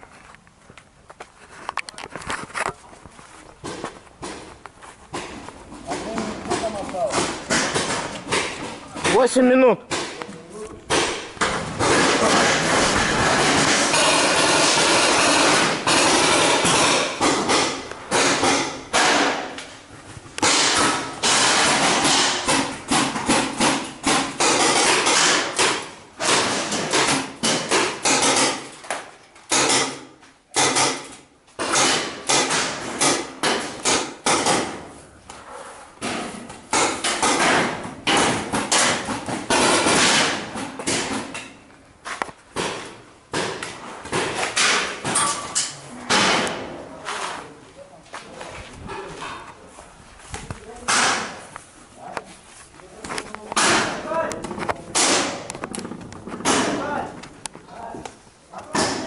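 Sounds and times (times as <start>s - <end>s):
paintballs hitting sheet metal: 5.1s - 19.8s, 20.4s - 35.0s, 36.0s - 41.6s, 42.5s - 47.4s, 50.8s - 51.5s, 53.0s - 59.0s
paintball markers firing: 9.9s - 19.6s.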